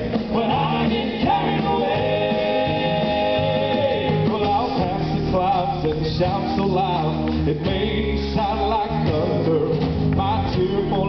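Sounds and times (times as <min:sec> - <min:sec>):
singers holding a note in harmony: 0:00.4 - 0:04.3.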